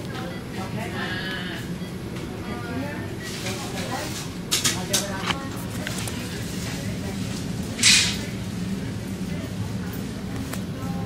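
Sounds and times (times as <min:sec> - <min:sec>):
low background voices: 0:00.0 - 0:11.0.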